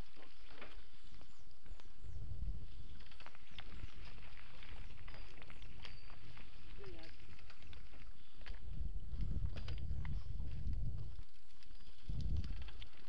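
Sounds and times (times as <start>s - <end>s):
bike tyres on dirt: 0.0s - 13.0s
bike clicking and rattling: 2.6s - 13.0s.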